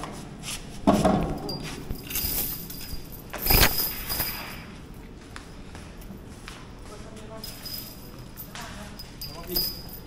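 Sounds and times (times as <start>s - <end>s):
metal chains rattling on concrete: 1.2s - 4.8s, 7.2s - 10.0s.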